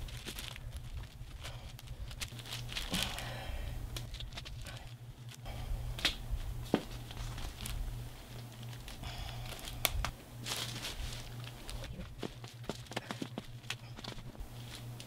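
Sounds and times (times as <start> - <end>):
plastic sheet crinkling: 0.0 - 5.4, 6.0 - 15.0
low steady hum: 0.0 - 15.0.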